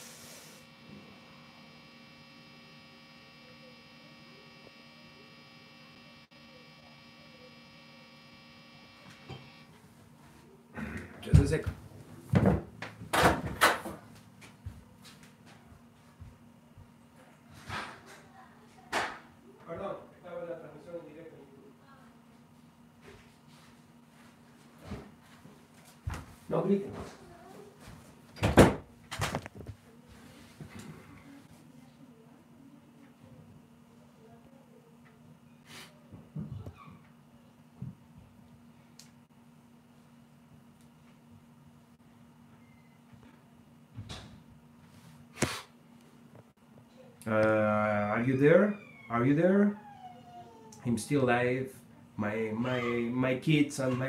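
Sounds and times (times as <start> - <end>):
guitar amplifier hum and buzz: 0.0 - 17.1
door shutting with a thump: 28.4 - 29.4, 44.0 - 44.4.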